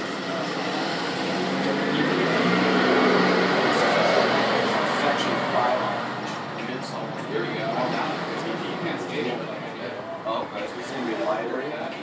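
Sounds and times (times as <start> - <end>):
large vehicle passing: 0.0 - 11.6.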